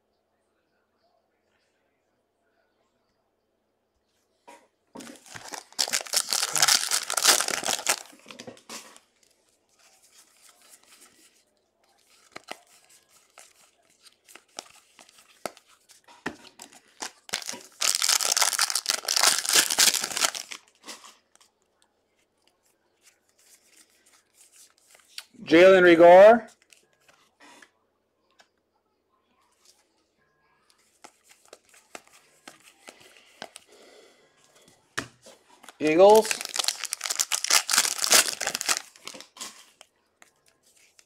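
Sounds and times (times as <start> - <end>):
card pack wrapper ripping: 5.0 - 8.4, 12.2 - 13.6, 16.7 - 20.7, 35.6 - 39.4
cards rustling and clicking: 5.0 - 21.5, 23.0 - 25.3, 30.8 - 33.7, 35.0 - 41.0.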